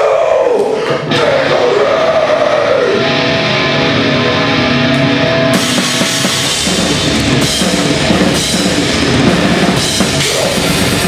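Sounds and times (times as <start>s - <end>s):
live death metal band: 0.0s - 11.0s.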